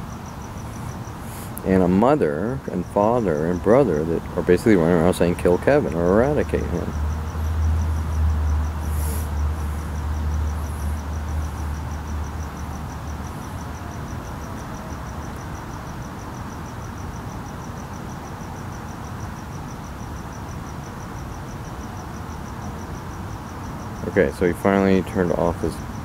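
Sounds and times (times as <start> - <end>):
crickets chirping: 0.0 - 26.0
steady background hum: 0.0 - 26.0.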